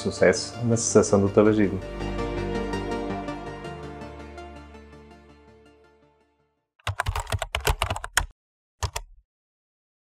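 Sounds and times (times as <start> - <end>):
computer keyboard typing clicks: 6.8 - 9.1.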